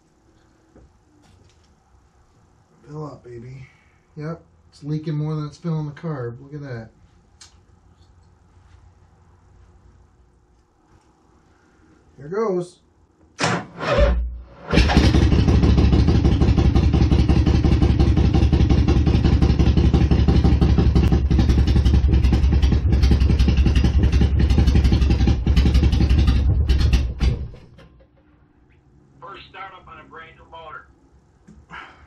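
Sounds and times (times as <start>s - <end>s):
motorcycle engine starting and running: 13.4s - 28.4s.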